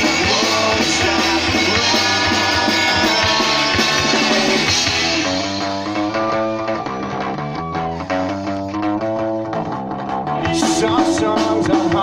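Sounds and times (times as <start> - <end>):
live rock band playing: 0.0 - 12.0
picked guitar notes: 0.0 - 12.0.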